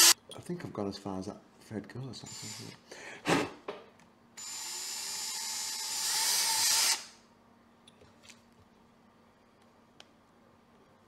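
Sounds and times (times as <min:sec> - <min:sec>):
cordless drill drilling into metal: 0:04.4 - 0:07.1.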